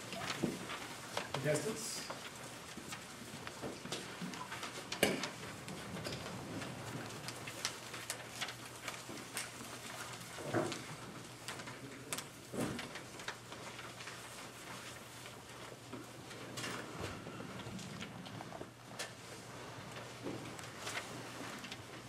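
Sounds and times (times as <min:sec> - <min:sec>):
people shuffling: 0:00.0 - 0:22.0.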